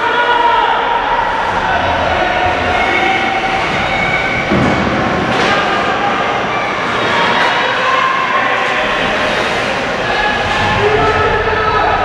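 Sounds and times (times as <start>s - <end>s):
overlapping voices echoing: 0.0s - 12.0s.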